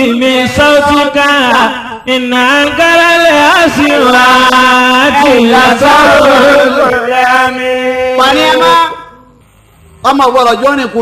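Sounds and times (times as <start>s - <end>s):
person chanting: 0.0s - 9.2s.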